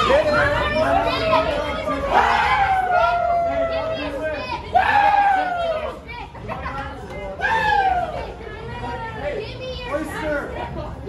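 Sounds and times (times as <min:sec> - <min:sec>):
fans shouting and cheering: 0:00.0 - 0:10.4.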